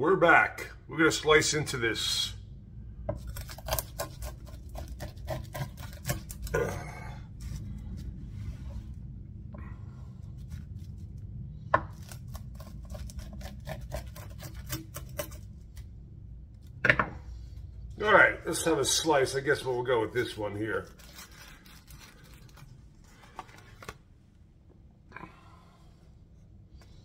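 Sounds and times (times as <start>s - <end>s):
pizza cutter crackling through crust: 3.2s - 6.7s, 11.9s - 15.8s.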